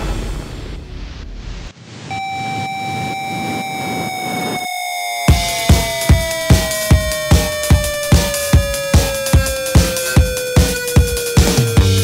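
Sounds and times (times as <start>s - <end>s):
steady synth tone: 2.0s - 12.0s
snowmobile engines droning: 5.3s - 12.0s.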